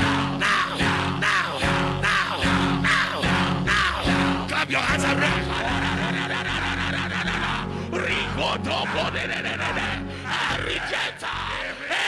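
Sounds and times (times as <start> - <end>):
worship music with keyboard and bass: 0.0 - 12.0.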